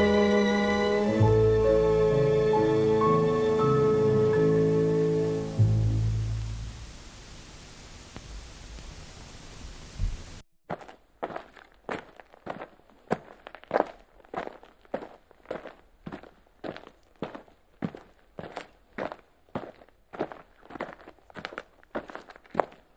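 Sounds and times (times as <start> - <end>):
music: 0.0 - 6.9
footsteps walking: 10.0 - 22.9.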